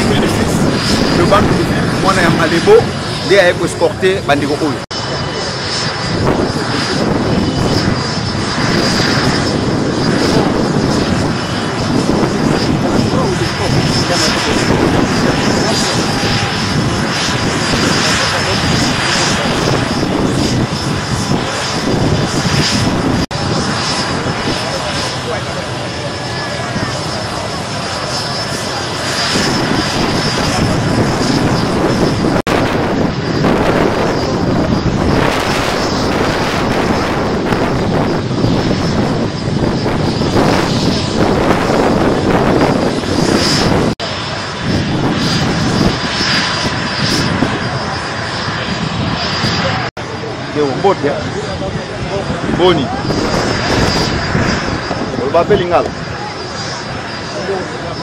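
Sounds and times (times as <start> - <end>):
crowd voices: 0.0 - 32.3, 33.1 - 58.0
helicopter turbine whine: 0.0 - 58.0.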